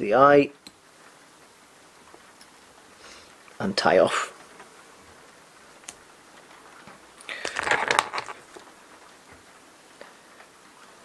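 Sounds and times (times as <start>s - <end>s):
crackly rustle of thread and foam: 0.8s - 11.0s.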